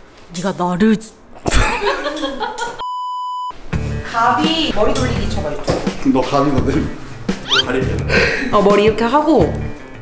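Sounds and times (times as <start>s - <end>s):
censor bleep: 2.8s - 3.5s.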